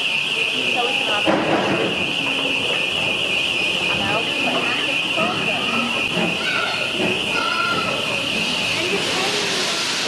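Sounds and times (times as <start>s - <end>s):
faint voices: 0.0s - 10.0s
passing steam train: 0.0s - 10.0s
steam hissing: 8.0s - 10.0s.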